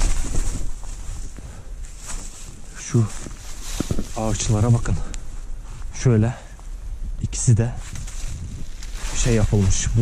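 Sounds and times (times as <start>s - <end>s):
wind on microphone: 0.0s - 1.5s, 6.7s - 10.0s
footsteps on dry leaves: 0.0s - 6.0s, 7.8s - 10.0s.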